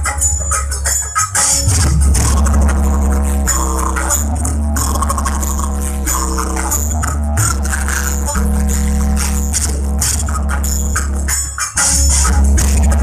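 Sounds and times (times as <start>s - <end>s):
loud music with heavy bass: 0.0s - 13.0s.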